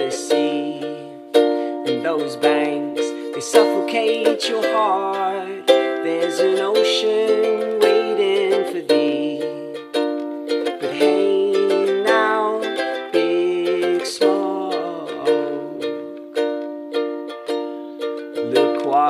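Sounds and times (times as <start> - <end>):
man singing: 0.0 - 16.2, 18.4 - 19.0
ukulele strumming: 0.0 - 19.0.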